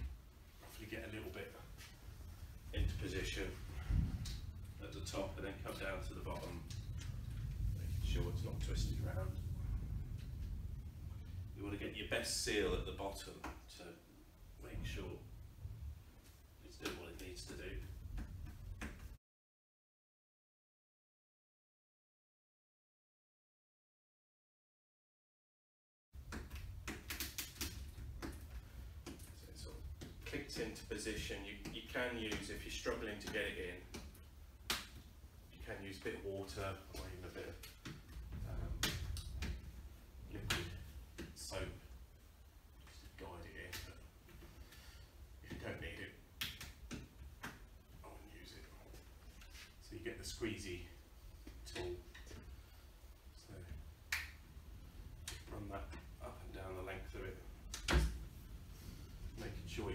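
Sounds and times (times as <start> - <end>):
steady low hum: 0.0 - 19.2, 26.2 - 59.9.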